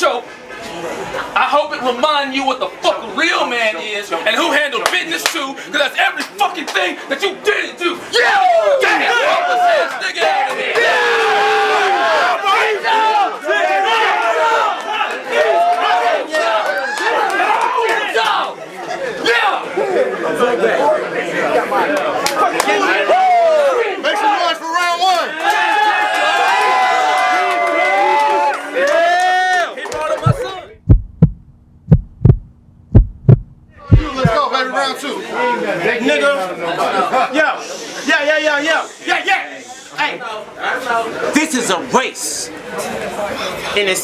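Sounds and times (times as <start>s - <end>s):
crowd of men yelling: 8.0s - 18.6s, 21.7s - 30.7s
person speaking: 30.0s - 34.4s
heartbeat thumps: 30.2s - 34.4s.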